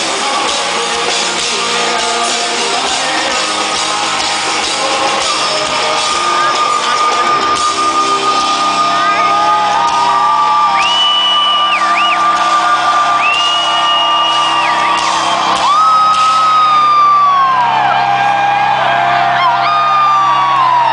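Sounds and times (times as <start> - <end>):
ringing rock music: 0.0 - 20.9
crowd whooping and whistling: 4.8 - 20.9.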